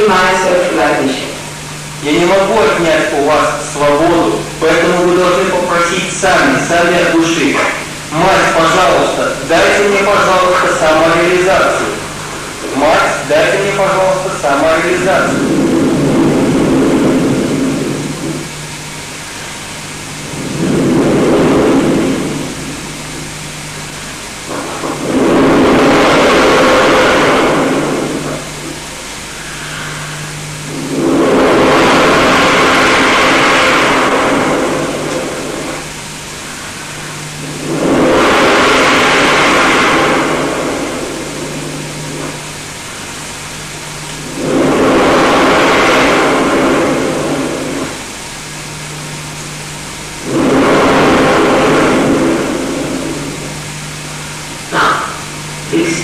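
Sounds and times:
low sound system hum: 0.0 - 56.0.

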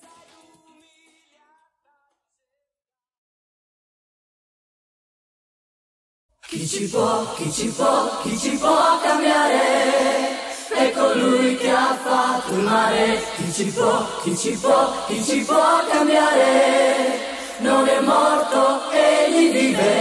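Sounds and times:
choir singing a cappella: 6.4 - 20.0.

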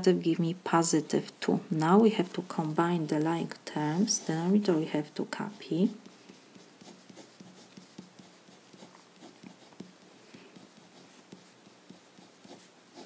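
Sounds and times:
marker scratching on paper: 2.3 - 13.0.

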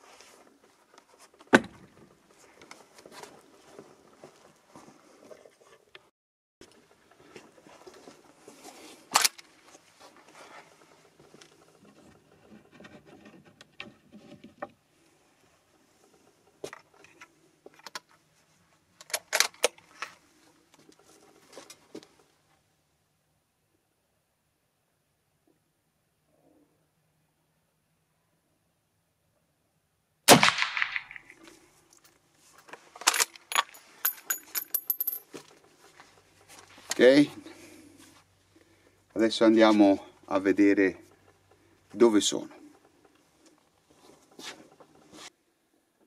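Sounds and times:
rifle handling rustling: 6.7 - 11.8, 30.5 - 37.7
light metallic clicks and clatter: 31.9 - 37.0.

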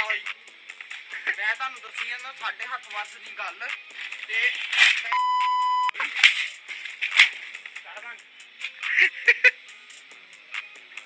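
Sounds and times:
censor bleep tone: 5.1 - 6.0.

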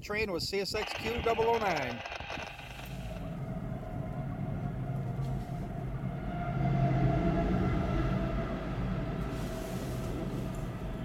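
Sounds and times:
faint hum: 0.7 - 9.4
freight train rumbling past: 3.1 - 11.0.

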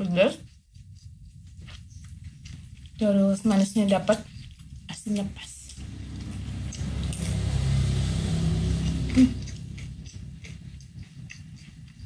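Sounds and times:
close-up chewing: 0.4 - 7.2, 9.4 - 12.0
short sharp sound: 5.8 - 10.7
vehicle engine rumble: 5.8 - 12.0.

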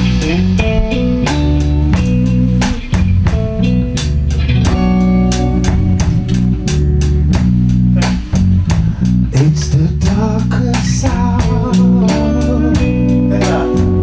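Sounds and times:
drum kit beat: 0.0 - 14.0
electric bass guitar: 0.0 - 14.0
electric guitar: 0.0 - 14.0.

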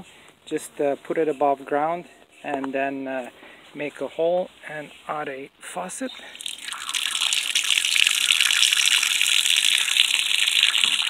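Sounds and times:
water pouring and splashing: 6.2 - 11.0.

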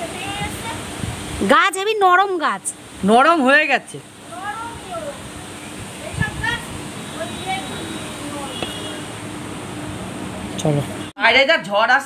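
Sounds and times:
wind on microphone: 0.0 - 1.6, 4.7 - 7.8
faint high call: 7.0 - 9.1.

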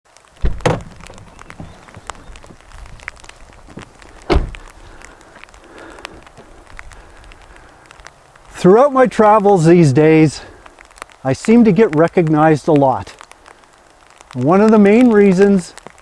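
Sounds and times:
heavy thumps: 0.4 - 5.1.

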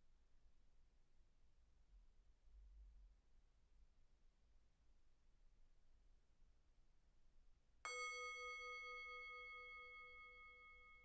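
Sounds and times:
meditation bell ringing: 7.9 - 11.0.

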